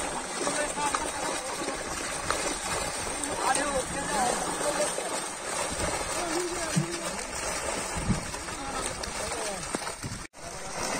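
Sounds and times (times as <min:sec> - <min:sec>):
fish thrashing and splashing water: 0:00.0 - 0:10.9.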